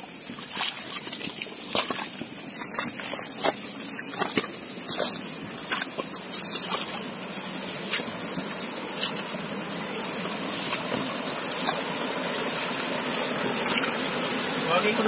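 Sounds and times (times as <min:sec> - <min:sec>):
night insects chirping: 0:00.0 - 0:15.0
rushing hiss: 0:00.0 - 0:15.0
footsteps through grass: 0:00.4 - 0:09.4.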